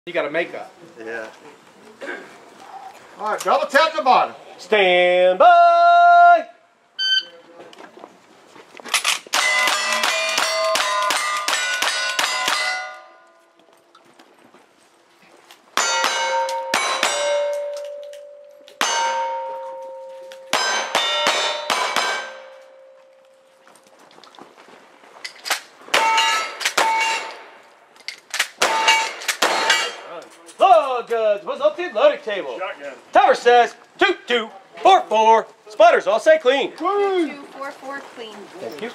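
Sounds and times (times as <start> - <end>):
steel plate targets clanging: 9.0 - 13.6, 15.8 - 23.5, 25.3 - 27.6, 28.6 - 30.2
gunshots: 28.4 - 30.1.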